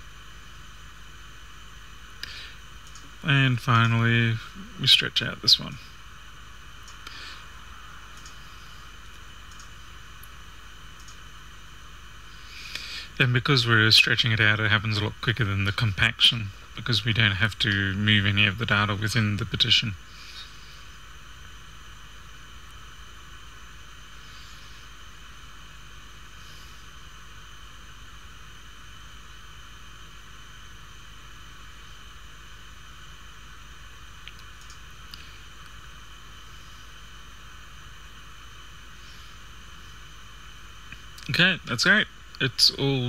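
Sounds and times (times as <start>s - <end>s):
faint high whines: 0.0s - 43.0s
low electrical hum: 0.0s - 43.0s.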